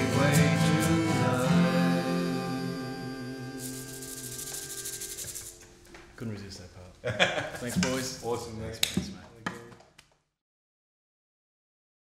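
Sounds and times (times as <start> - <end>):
acoustic guitar chord ringing: 0.0 - 5.9
plastic bottle shaken rattling: 3.7 - 5.5.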